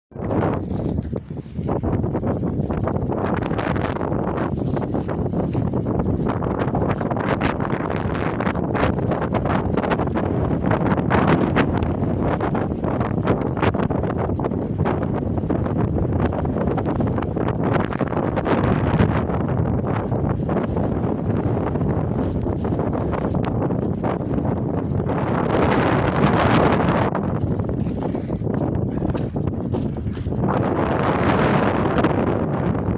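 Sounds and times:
dry grass rustling: 0.1 - 32.9
wind buffeting microphone: 0.1 - 32.9.

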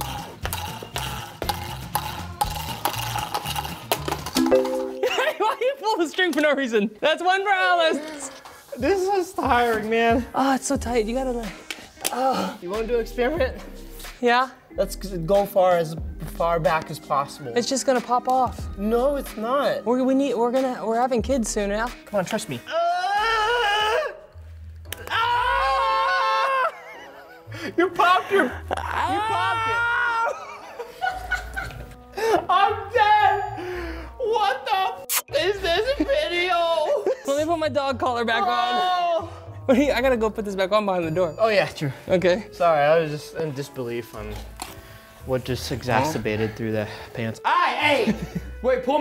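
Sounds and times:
background music with bass: 0.0 - 5.2, 8.8 - 26.0, 39.3 - 49.0.

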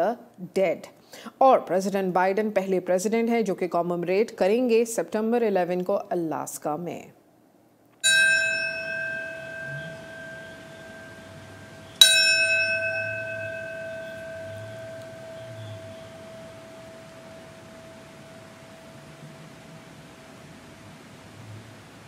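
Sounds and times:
bell tolling: 8.0 - 20.4.

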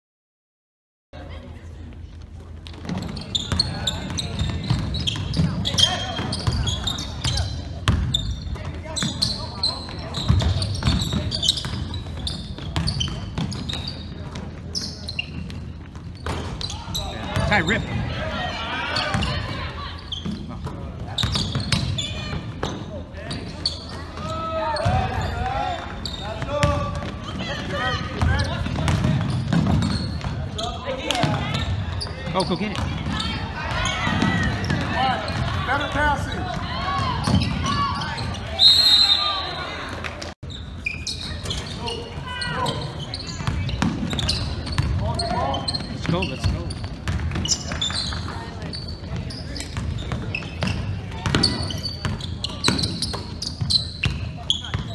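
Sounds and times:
sneakers squeaking: 1.8 - 54.9
basketball bouncing on wooden floor: 28.2 - 30.4.

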